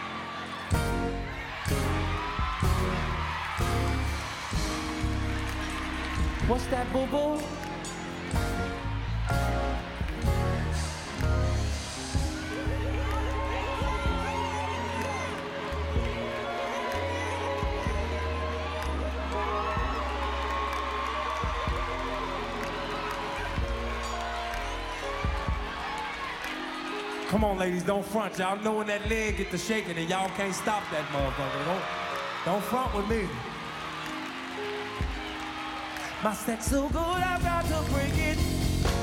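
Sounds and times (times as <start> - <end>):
band playing slow groove: 36.7 - 39.0.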